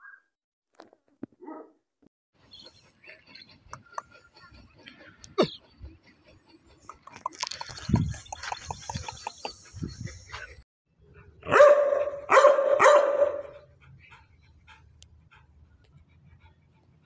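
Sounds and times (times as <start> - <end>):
dog barking: 1.4 - 1.8, 11.4 - 13.7.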